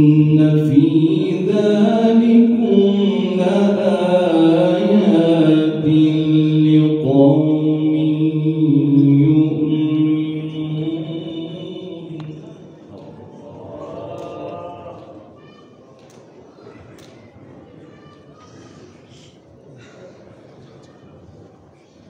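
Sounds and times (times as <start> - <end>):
man reciting melodically into microphone: 0.0 - 15.2.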